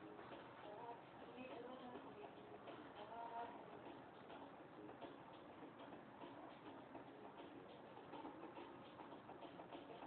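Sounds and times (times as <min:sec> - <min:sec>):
soft irregular ticking: 0:00.0 - 0:10.0.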